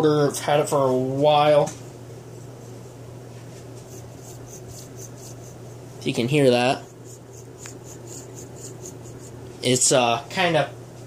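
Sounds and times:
steady low hum: 0.0 - 11.0
gritty scratching of motor shaft: 3.8 - 9.4.

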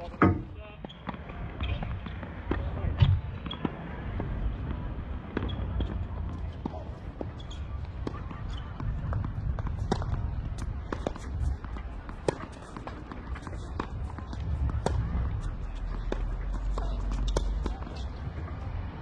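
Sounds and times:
tennis ball bouncing on court: 0.1 - 18.5.

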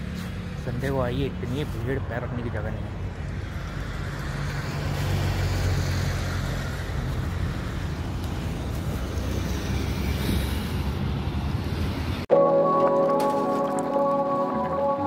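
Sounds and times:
bicycle road noise: 0.0 - 15.0
traffic noise: 0.0 - 15.0.

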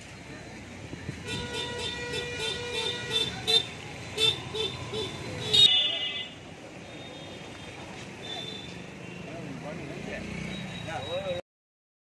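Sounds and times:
low traffic rumble: 0.0 - 11.4
vehicle horn beeping: 1.3 - 9.4.

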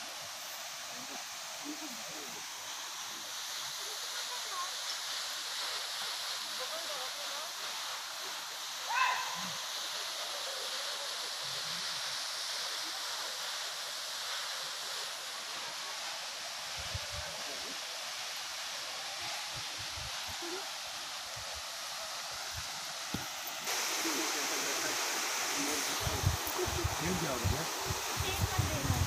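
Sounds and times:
waterfall rushing: 0.0 - 29.0.

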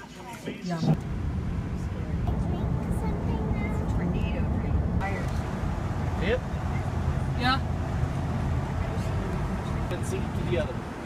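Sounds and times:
car road and engine rumble: 0.7 - 11.0.

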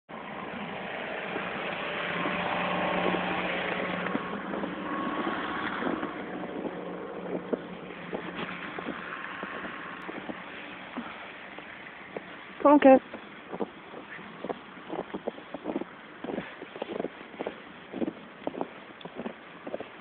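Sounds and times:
low engine-like hum: 0.1 - 19.7
soft irregular crunches: 4.0 - 20.0.

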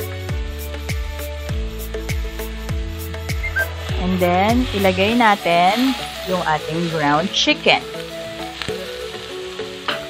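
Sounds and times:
meat sizzling in a pan: 0.0 - 10.0.

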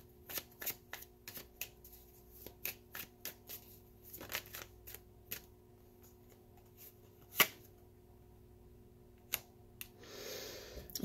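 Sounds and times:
cards being shuffled: 0.2 - 5.5.

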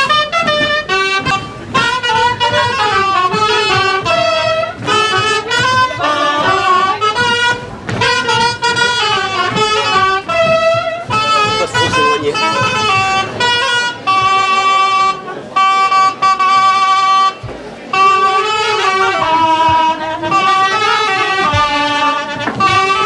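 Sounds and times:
folk dance tune on wind instruments: 0.0 - 23.0.

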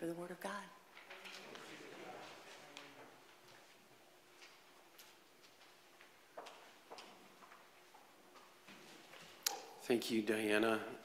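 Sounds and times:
faint footsteps: 0.8 - 9.9.

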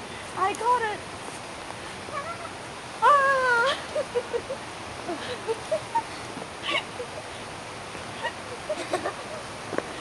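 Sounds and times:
person giggling: 8.2 - 9.4.

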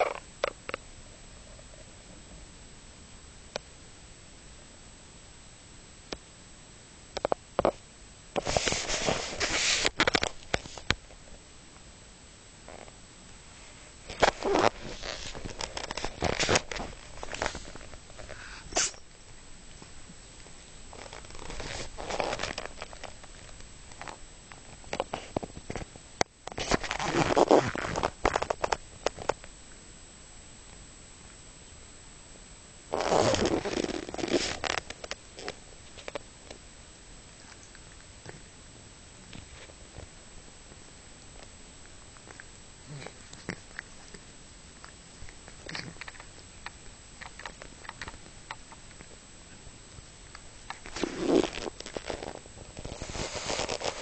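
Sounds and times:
cat licking fur: 42.2 - 49.2.

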